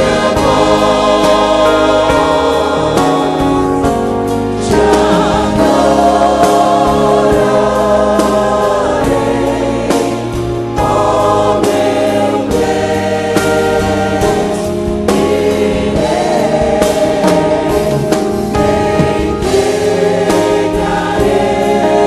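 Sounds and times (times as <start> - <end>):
choir singing gospel: 0.0 - 22.0.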